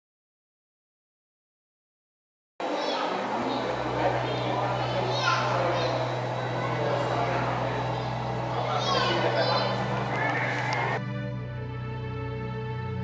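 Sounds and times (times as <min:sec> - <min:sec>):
chatter of voices: 0:02.6 - 0:11.0
steady low hum: 0:02.6 - 0:11.0.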